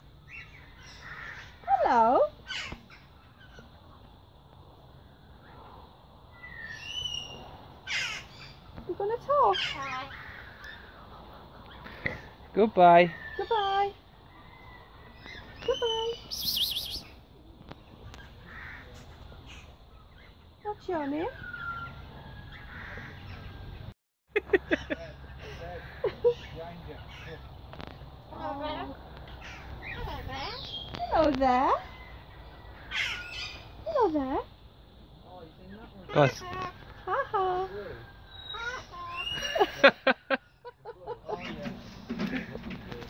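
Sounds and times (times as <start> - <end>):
cockatoo calling and screeching: 0.3 - 3.8, 6.4 - 8.6, 13.1 - 17.2, 21.2 - 23.5, 29.3 - 34.4, 36.0 - 39.8
bird squawking: 15.6 - 17.1.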